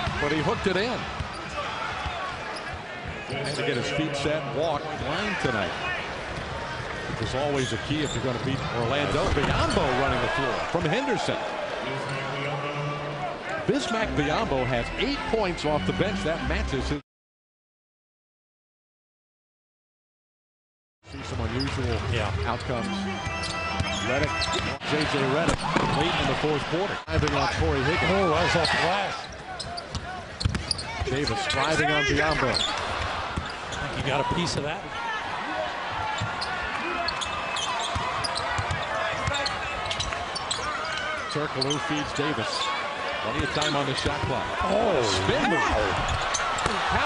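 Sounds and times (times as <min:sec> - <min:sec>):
murmur of arena crowd: 0:00.0 - 0:17.0, 0:21.1 - 0:47.0
sneaker squeaks: 0:22.8 - 0:26.0, 0:29.2 - 0:31.5, 0:32.5 - 0:32.8, 0:36.1 - 0:42.0, 0:46.0 - 0:46.7.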